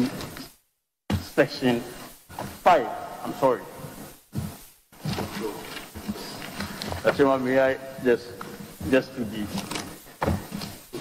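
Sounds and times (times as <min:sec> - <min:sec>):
paper rustling and shuffling: 0:04.4 - 0:11.0.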